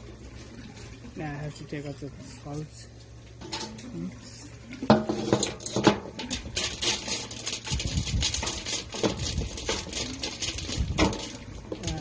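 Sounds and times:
hook scraping soil: 0:05.0 - 0:12.0.

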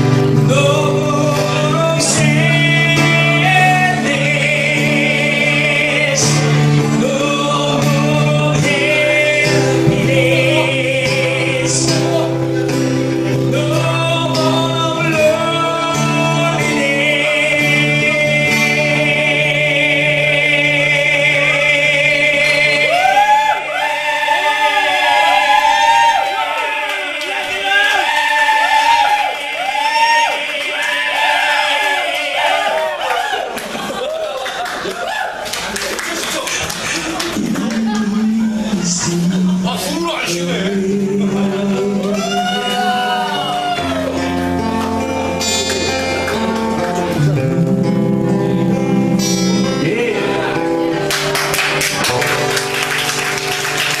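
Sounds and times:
voices singing together: 0:00.4 - 0:33.0
applause: 0:25.8 - 0:38.2, 0:51.1 - 0:54.0.

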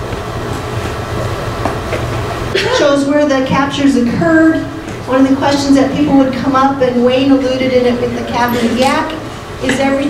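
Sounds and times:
low hum and rumble: 0:00.0 - 0:10.0.

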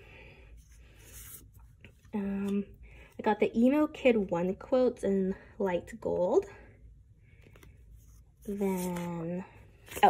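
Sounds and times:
paper sticker sheets rustling: 0:07.5 - 0:09.2.

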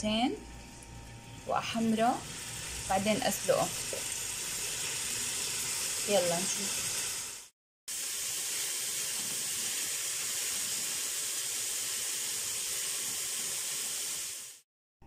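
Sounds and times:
chicken sizzling in hot oil: 0:00.5 - 0:14.7.

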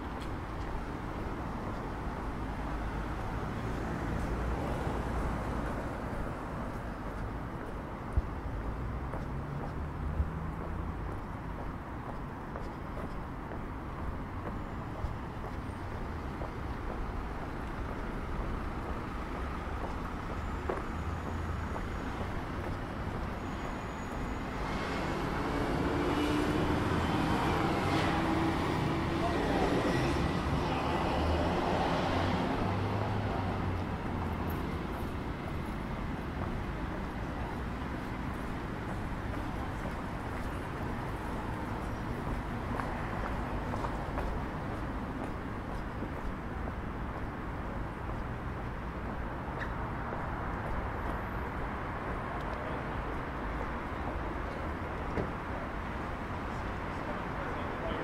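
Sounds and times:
background traffic noise: 0:00.0 - 0:58.0.

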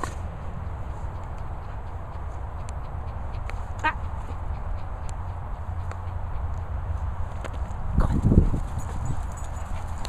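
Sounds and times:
wind on microphone: 0:07.6 - 0:10.0.

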